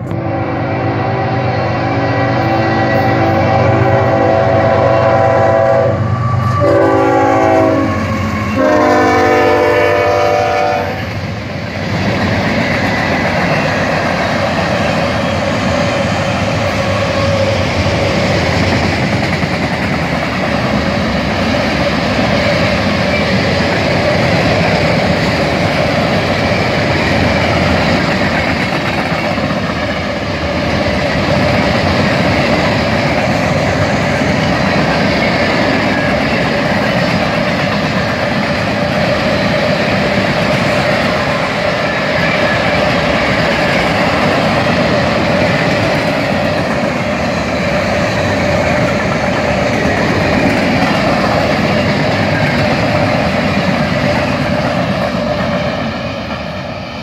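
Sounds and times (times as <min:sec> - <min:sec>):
freight train wheels rumbling: 0:00.0 - 0:57.0.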